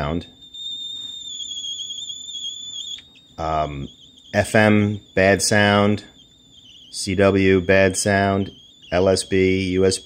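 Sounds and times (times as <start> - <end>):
high-pitched radio howl: 0.0 - 10.0.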